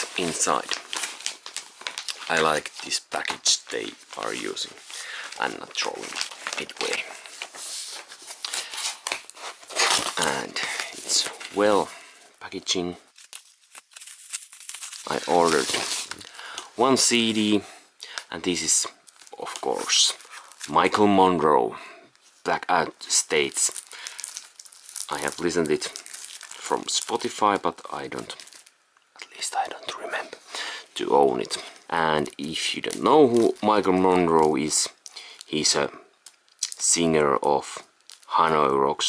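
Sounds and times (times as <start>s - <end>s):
cardboard and bubble wrap rustling: 0.0s - 11.8s, 13.1s - 16.3s, 23.3s - 28.7s, 32.8s - 34.7s
man speaking softly: 5.4s - 7.2s, 29.2s - 30.4s.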